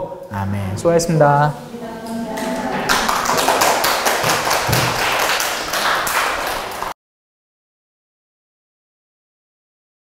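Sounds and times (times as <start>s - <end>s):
audience applauding: 2.4s - 7.0s.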